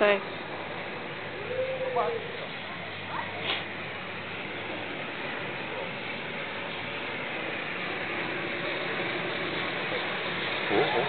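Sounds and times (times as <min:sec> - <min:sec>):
chairlift rushing noise: 0:00.0 - 0:11.0.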